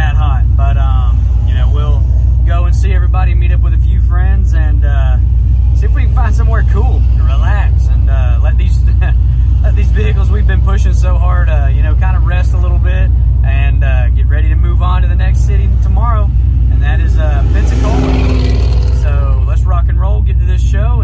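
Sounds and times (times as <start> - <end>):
man talking: 0.0 - 21.0
pickup engine low rumble: 0.0 - 21.0.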